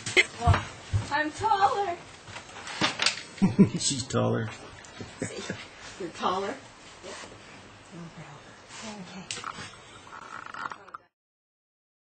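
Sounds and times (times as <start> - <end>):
soft laughter or murmuring: 5.0 - 5.8.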